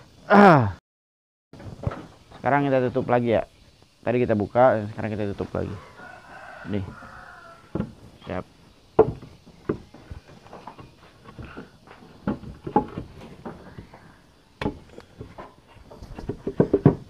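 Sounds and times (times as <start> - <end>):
wooden boards knocking and scraping: 1.6 - 3.1, 6.8 - 17.0.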